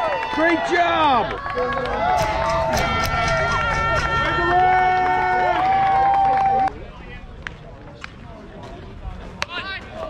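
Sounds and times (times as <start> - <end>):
spectators shouting woo: 0.0 - 6.7
people clapping: 0.0 - 8.2.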